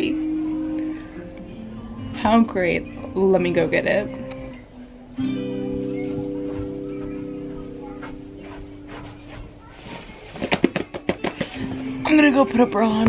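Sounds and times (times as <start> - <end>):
acoustic guitar chord ringing: 0.0 - 8.9
sharp knocks and clatter: 10.3 - 11.6.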